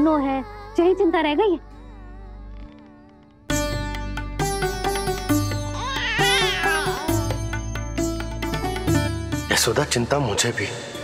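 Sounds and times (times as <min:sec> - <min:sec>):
plucked string music: 0:02.7 - 0:09.9.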